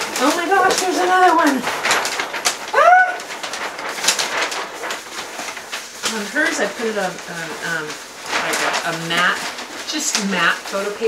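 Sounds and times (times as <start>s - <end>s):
paper rustling and crinkling: 0.0s - 11.0s
person saying ooh: 2.7s - 3.3s.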